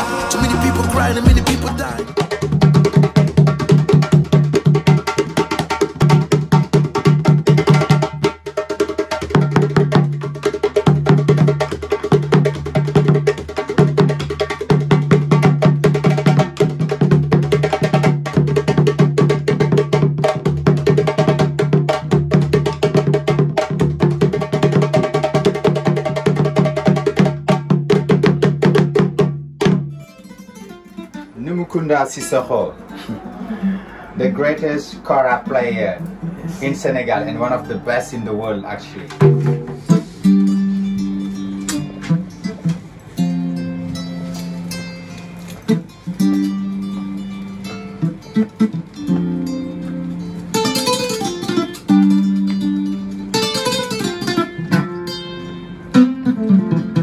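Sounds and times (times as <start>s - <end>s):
hand drums in fast rhythm: 0.0s - 30.0s, 35.2s - 38.1s, 39.0s - 41.2s.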